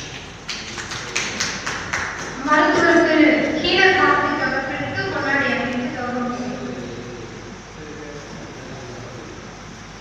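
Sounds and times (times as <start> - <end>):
people clapping hands: 0.0 - 2.6.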